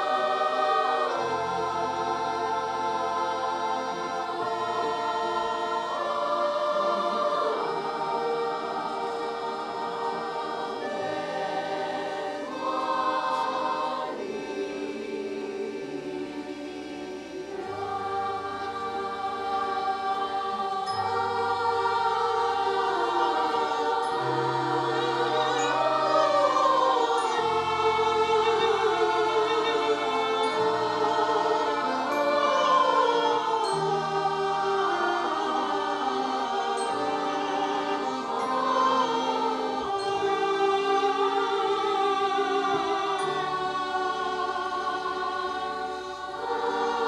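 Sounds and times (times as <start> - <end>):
accordion ensemble: 0.0 - 47.0
children's choir singing: 0.0 - 47.0.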